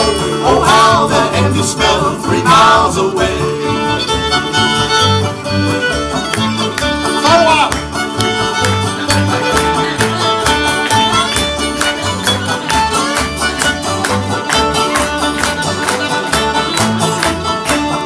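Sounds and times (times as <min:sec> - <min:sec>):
fiddle melody: 0:00.0 - 0:18.0
strummed acoustic guitar: 0:00.0 - 0:18.0
upright bass: 0:00.0 - 0:18.0.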